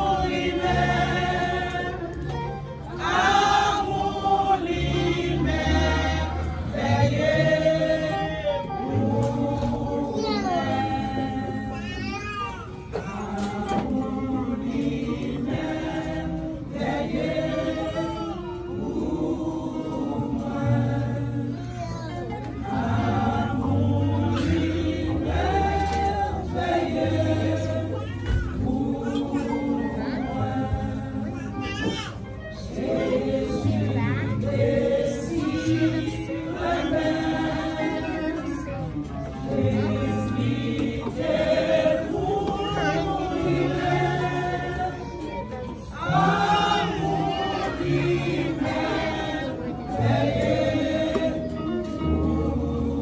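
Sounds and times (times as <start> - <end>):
women's choir singing: 0.0 - 12.1, 12.7 - 53.0.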